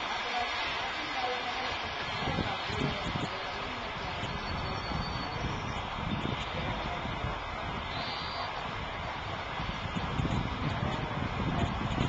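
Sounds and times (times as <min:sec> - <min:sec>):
faint distant voices: 0:00.0 - 0:12.0
steady outdoor hiss: 0:00.0 - 0:12.0.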